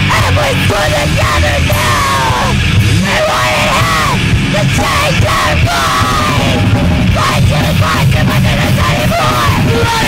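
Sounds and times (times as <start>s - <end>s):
bass guitar: 0.0s - 10.0s
drums: 0.0s - 10.0s
vocalist yelling: 0.0s - 10.0s.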